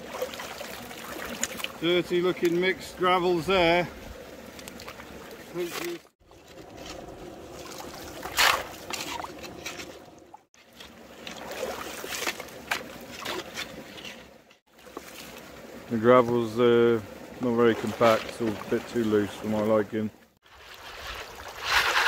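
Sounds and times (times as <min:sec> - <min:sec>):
shallow stream running: 0:00.0 - 0:22.0
shovel scraping gravel: 0:06.6 - 0:10.0, 0:20.8 - 0:22.0.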